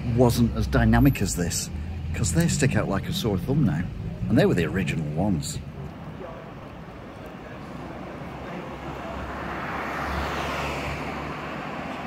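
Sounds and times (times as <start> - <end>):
motor vehicle passing: 0.0 - 12.0.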